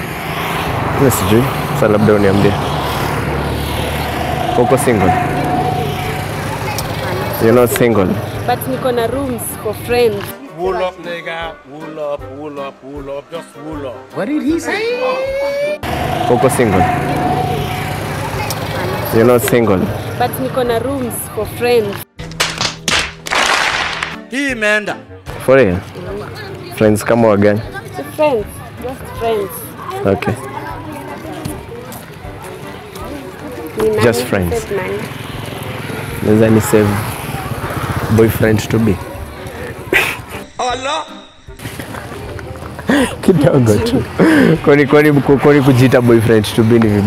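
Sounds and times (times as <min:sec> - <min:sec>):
vehicle passing on road: 0:00.0 - 0:10.3, 0:15.8 - 0:22.0, 0:25.3 - 0:40.4, 0:41.6 - 0:47.0
large crowd noise: 0:00.0 - 0:10.8, 0:12.8 - 0:22.0, 0:25.2 - 0:41.0
film music: 0:00.3 - 0:26.7, 0:39.0 - 0:46.3
people talking: 0:04.4 - 0:10.3, 0:14.6 - 0:22.0, 0:42.9 - 0:47.0.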